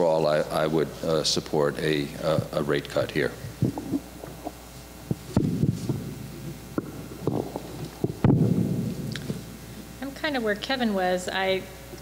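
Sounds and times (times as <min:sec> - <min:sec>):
low thumps and knocks: 0:05.1 - 0:09.6.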